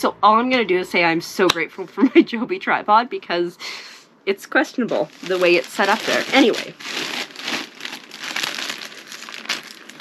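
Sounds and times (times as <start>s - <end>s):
plastic mailer bag crinkling: 4.9s - 10.0s.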